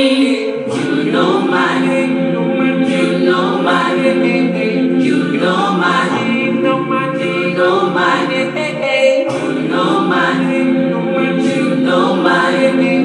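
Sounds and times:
choir singing gospel a cappella: 0.0s - 13.0s.

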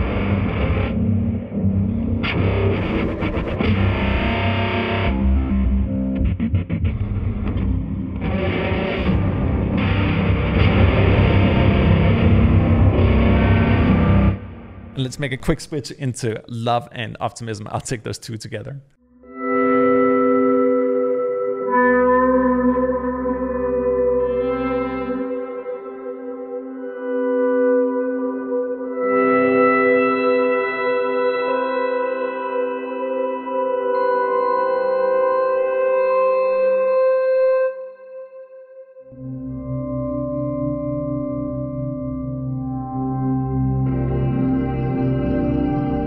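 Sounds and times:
low pulsing guitar drone: 0.0s - 14.9s, 19.2s - 30.5s, 39.2s - 46.0s
sustained guitar pad chord: 19.1s - 46.0s.

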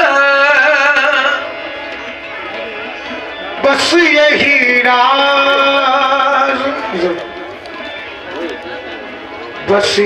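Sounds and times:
loud singing: 0.0s - 2.3s, 3.2s - 8.2s
harmonium reeds held: 0.0s - 10.0s
low voices: 0.0s - 10.0s.

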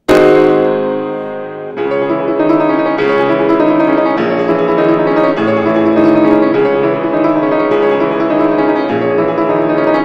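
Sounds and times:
fast grand piano passage: 0.0s - 10.0s.

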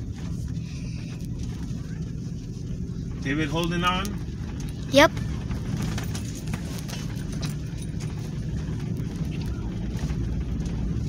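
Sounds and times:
car engine rumble from inside cabin: 0.0s - 11.0s.

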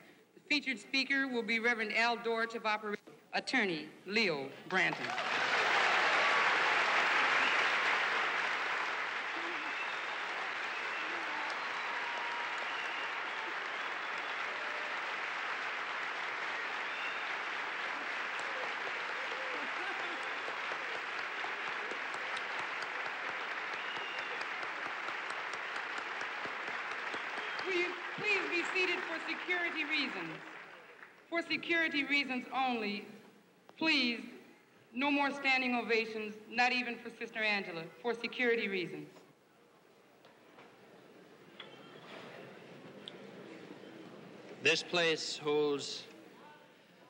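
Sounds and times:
audience applauding: 4.9s - 31.3s.

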